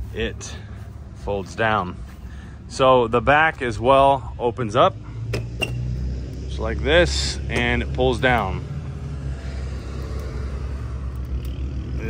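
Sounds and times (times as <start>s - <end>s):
steady low rumble: 0.0s - 5.2s, 6.2s - 12.0s.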